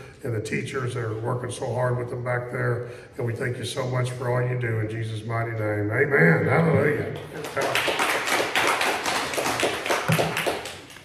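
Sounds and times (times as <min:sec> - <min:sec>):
hand clapping: 0:07.2 - 0:11.0.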